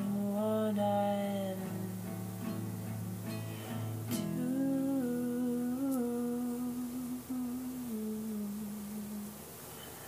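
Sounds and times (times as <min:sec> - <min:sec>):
person humming a long note: 0:03.1 - 0:09.4.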